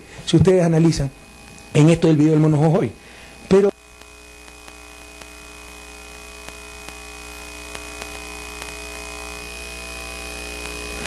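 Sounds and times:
electrical hum with high whine: 0:00.0 - 0:11.0
faint ticks: 0:04.0 - 0:05.4, 0:06.4 - 0:07.0, 0:07.6 - 0:08.9, 0:10.6 - 0:11.0.

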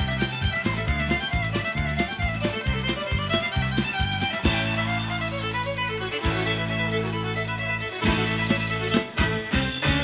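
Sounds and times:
country band playing: 0:00.0 - 0:10.0
fiddle playing: 0:00.0 - 0:10.0.

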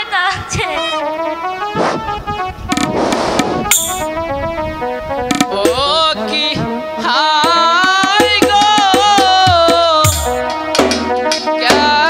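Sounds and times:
wavering gliding lead line: 0:01.0 - 0:06.9
melody of held notes: 0:01.0 - 0:08.6
percussion strikes: 0:02.7 - 0:04.2, 0:05.2 - 0:06.1, 0:07.4 - 0:12.0.

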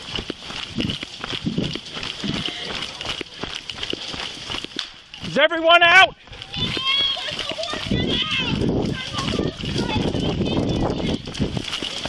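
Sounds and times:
camera jostling: 0:00.0 - 0:05.4
hurried footsteps: 0:00.0 - 0:12.0.

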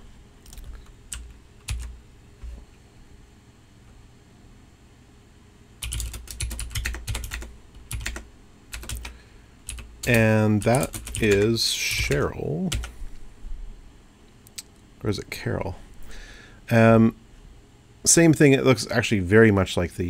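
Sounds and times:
typing on computer keyboard: 0:00.4 - 0:01.9, 0:05.8 - 0:12.9.

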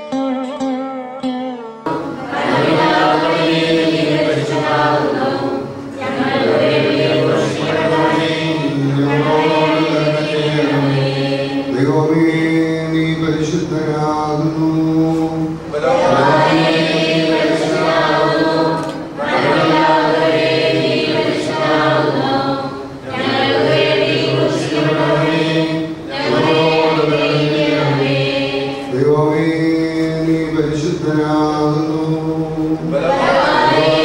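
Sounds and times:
men chanting a hymn: 0:01.9 - 0:34.0.

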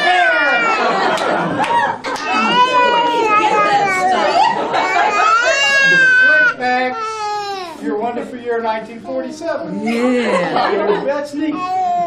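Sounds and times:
high-pitched wailing cry: 0:02.3 - 0:07.8.

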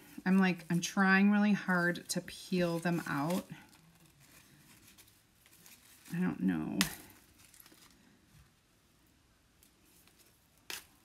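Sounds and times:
rustling artificial flowers: 0:00.0 - 0:11.0.

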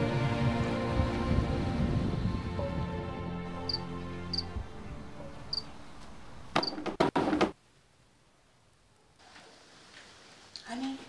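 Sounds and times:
soft background music: 0:00.0 - 0:06.0
cricket chirping: 0:03.7 - 0:04.5.

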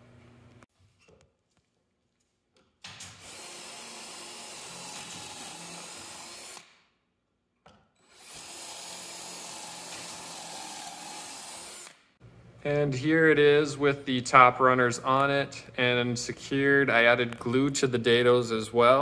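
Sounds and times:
cordless drill boring into wood: 0:03.2 - 0:06.7, 0:08.0 - 0:12.0.

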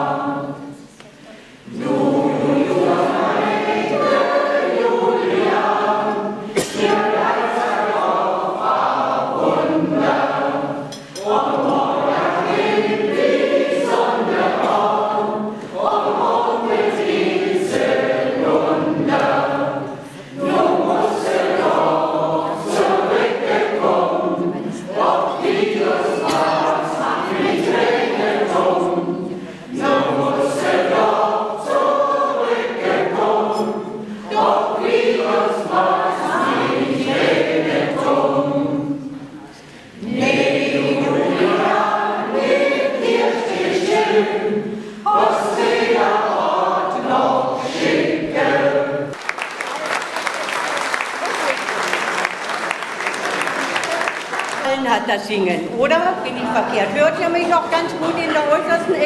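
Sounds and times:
mixed choir singing folk song: 0:00.0 - 0:54.4.

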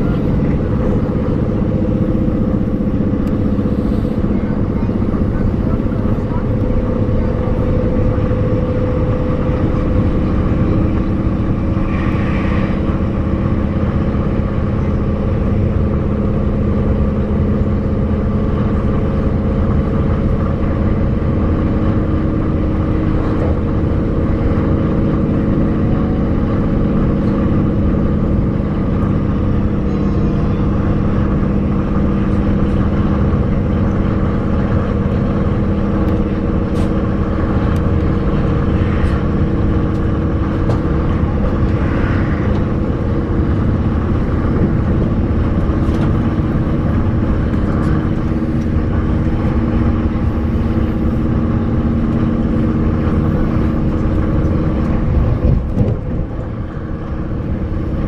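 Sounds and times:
low hum: 0:00.0 - 0:58.0
train wheels rumbling on track: 0:00.0 - 0:58.0.

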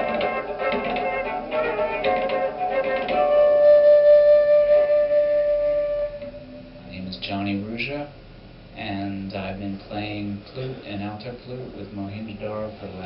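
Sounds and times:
strummed guitar: 0:00.0 - 0:04.1
flute playing: 0:00.0 - 0:07.0.

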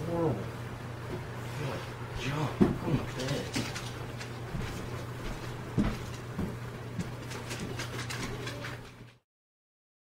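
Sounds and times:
steady low hum: 0:00.0 - 0:09.2
footsteps: 0:02.2 - 0:09.1.

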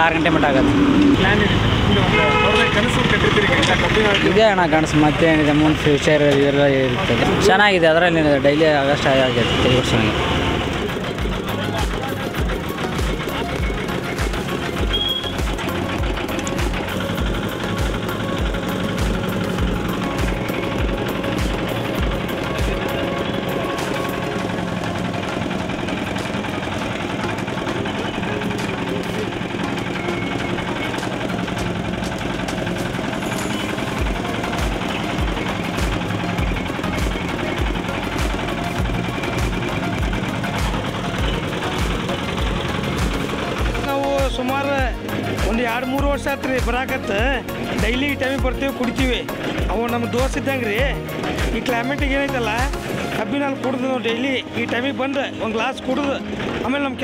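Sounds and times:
music with thumping beat: 0:10.8 - 0:53.8.

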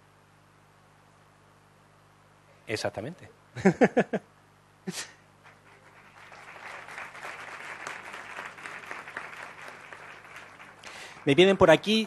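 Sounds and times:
audience applause: 0:05.4 - 0:11.8.

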